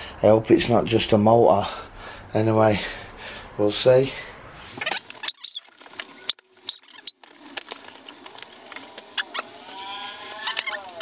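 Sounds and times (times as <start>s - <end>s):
packing tape ripping: 5.0s - 11.0s.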